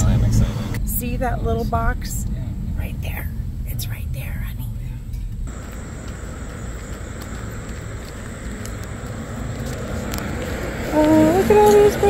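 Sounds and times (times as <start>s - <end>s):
low rumble: 0.0s - 10.9s
outdoor background noise: 0.0s - 12.0s.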